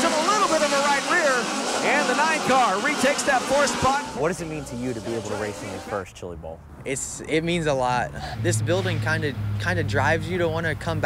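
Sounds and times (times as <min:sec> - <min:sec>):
announcer calling a race: 0:00.0 - 0:06.1
race car engines running: 0:00.0 - 0:11.0.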